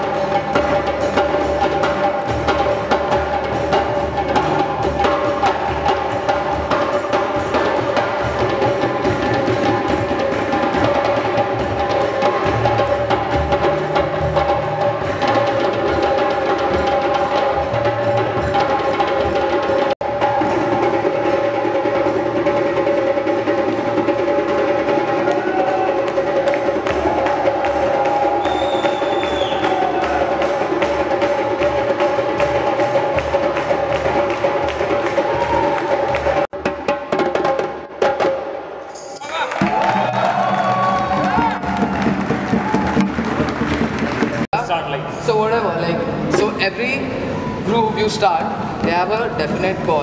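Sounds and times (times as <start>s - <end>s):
djembes drumming: 0.0s - 44.7s
man talking: 44.5s - 50.0s.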